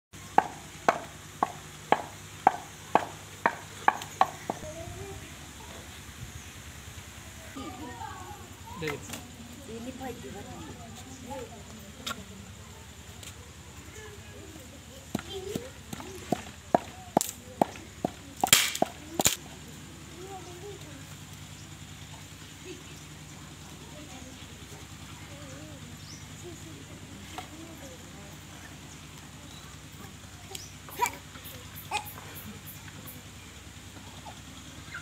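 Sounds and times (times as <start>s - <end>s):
wooden pestle pounding in mortar: 0.3s - 4.6s, 15.9s - 19.0s.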